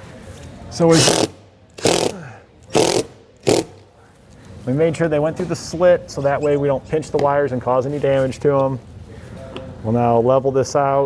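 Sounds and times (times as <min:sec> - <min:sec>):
cordless drill driving screws: 0:01.0 - 0:02.1, 0:02.7 - 0:03.8.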